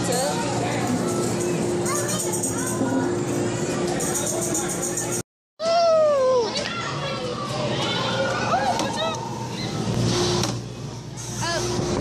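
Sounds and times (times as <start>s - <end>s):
children chattering: 0.0s - 5.2s, 6.4s - 9.9s
child crying out: 5.6s - 6.6s.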